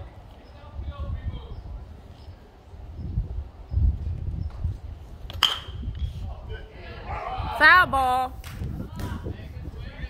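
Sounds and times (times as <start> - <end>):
metal bat hitting ball: 5.3 - 5.8.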